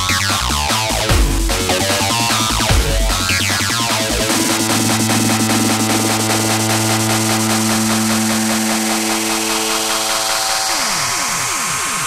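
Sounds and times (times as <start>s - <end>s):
dubstep electronic dance music: 0.0s - 12.0s.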